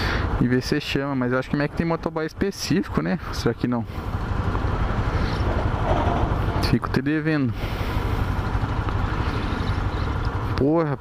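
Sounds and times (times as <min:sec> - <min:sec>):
road noise: 0:00.0 - 0:11.0
motorcycle engine running: 0:03.1 - 0:10.9.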